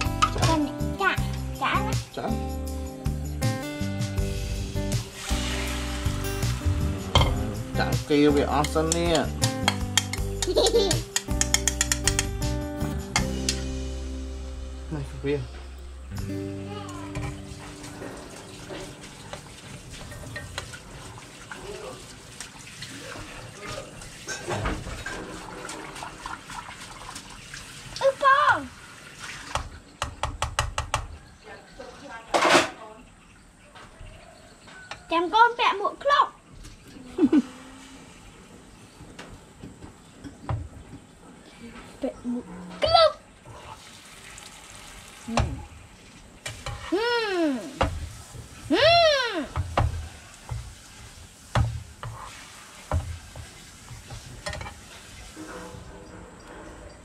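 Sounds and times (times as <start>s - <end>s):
egg sizzling in a pan: 4.2s - 7.3s, 16.7s - 22.8s, 46.4s - 55.5s
metal spoon scraping a pan: 11.1s - 12.3s, 46.5s - 47.0s.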